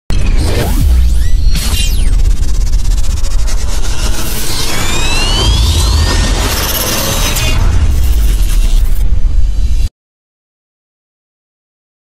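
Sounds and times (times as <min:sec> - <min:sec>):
deep rumble: 0:00.1 - 0:09.9
rising whine: 0:00.1 - 0:09.9
falling sweep: 0:00.3 - 0:09.8.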